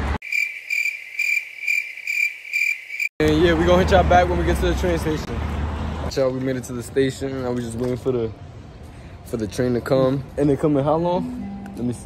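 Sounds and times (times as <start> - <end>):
insect chirping: 0.2 - 3.1.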